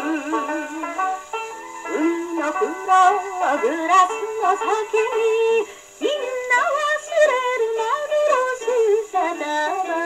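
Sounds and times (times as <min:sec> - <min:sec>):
old popular song on phonograph: 0:00.0 - 0:10.0
record surface hiss: 0:00.0 - 0:10.0.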